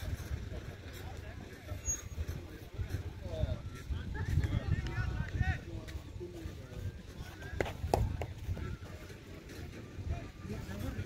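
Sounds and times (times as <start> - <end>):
distant people talking: 0.0 - 11.0.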